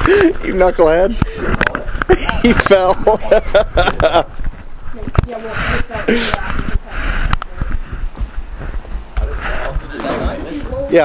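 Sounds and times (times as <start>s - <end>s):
people laughing: 1.2s - 4.4s
low thumps: 1.2s - 11.0s.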